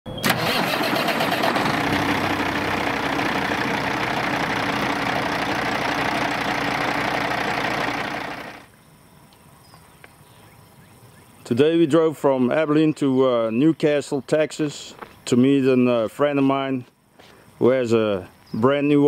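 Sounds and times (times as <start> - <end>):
truck engine running: 0.2 - 8.7.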